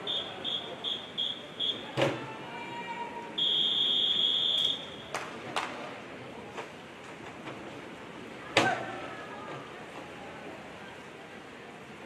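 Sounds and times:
referee's long whistle: 0.0s - 1.9s, 3.4s - 5.1s.

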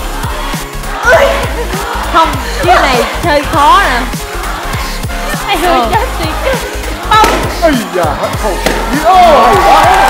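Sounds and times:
background music: 0.0s - 10.0s
balloons popping: 7.2s - 7.6s.

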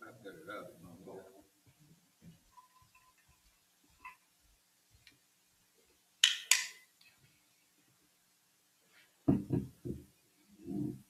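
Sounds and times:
sharp loud clacks: 6.2s - 6.8s.

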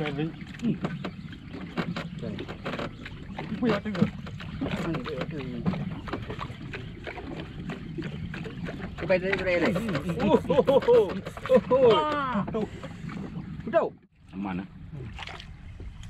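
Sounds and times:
water against boat hull: 0.0s - 16.0s
knocks on hull: 0.7s - 13.4s.

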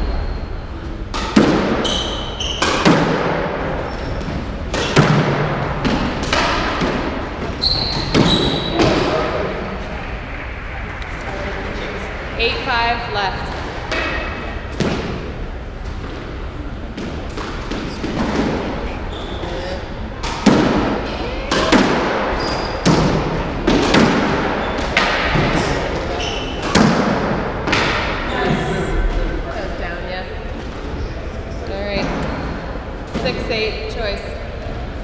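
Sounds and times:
squash ball struck with racquets: 1.1s - 9.4s, 13.6s - 19.5s, 20.2s - 28.3s.

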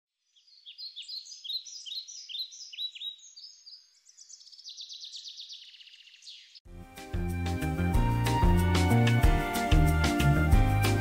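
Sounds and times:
bird chirping and trilling: 0.2s - 6.6s.

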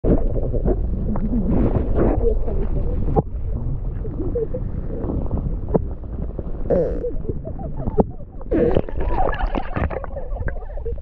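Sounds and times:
underwater rumble of moving water: 0.0s - 11.0s.

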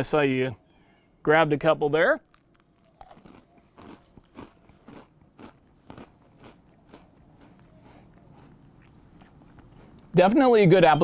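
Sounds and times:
cereal crunching being chewed: 2.3s - 10.1s.

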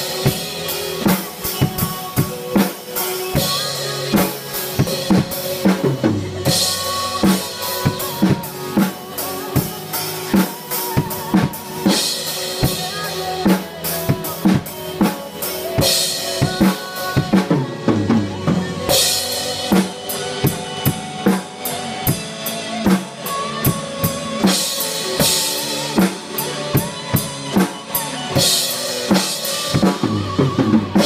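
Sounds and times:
ballad backing track: 0.0s - 31.0s
drum kit beat: 0.0s - 31.0s.

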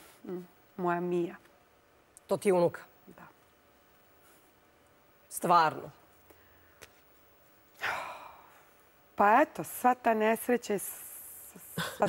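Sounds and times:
person sighing: 7.8s - 8.5s.

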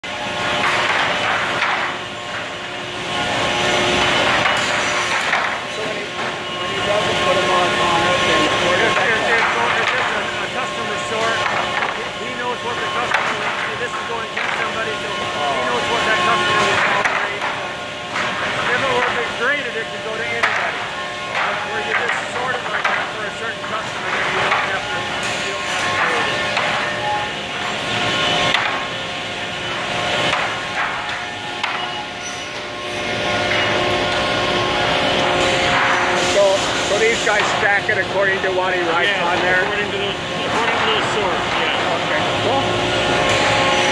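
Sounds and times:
mill machinery humming: 0.0s - 43.9s
indistinct voices talking: 35.2s - 43.9s.

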